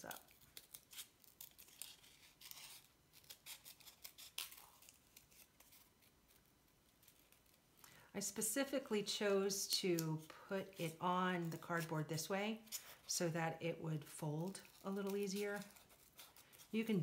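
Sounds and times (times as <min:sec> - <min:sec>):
scissors cutting cardboard: 0:00.0 - 0:06.0, 0:14.5 - 0:17.0.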